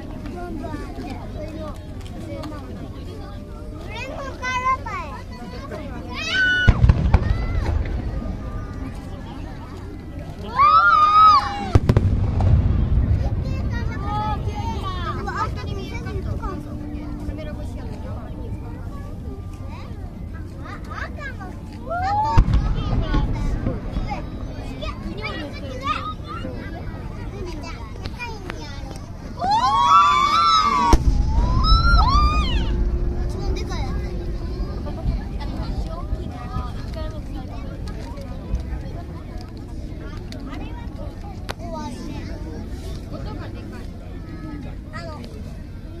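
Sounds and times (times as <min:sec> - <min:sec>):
firework bang: 0:06.6 - 0:08.5, 0:11.7 - 0:14.8, 0:22.3 - 0:24.3, 0:30.8 - 0:36.2
low rumble: 0:11.8 - 0:20.4, 0:30.4 - 0:39.1
spectators calling out: 0:29.3 - 0:36.3.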